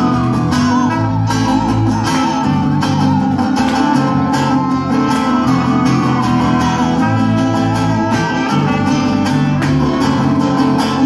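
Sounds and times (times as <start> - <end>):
electric bass: 0.0 - 11.0
strummed acoustic guitar: 0.0 - 11.0.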